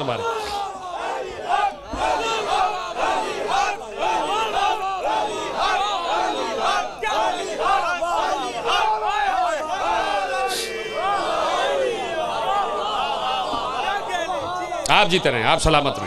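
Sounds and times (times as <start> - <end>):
men shouting together: 0.0 - 16.0.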